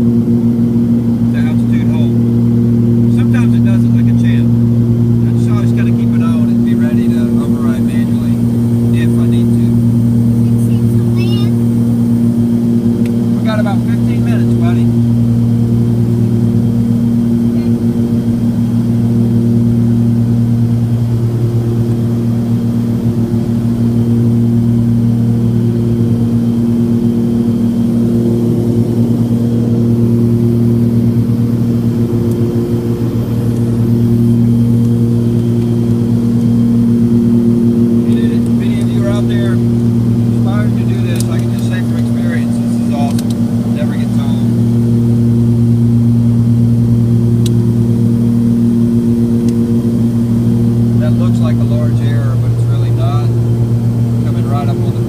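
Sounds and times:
aircraft engines droning in cabin: 0.0 - 55.0.

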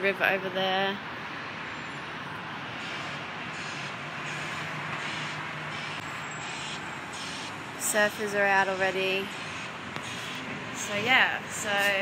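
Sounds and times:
distant city traffic: 0.0 - 12.0.

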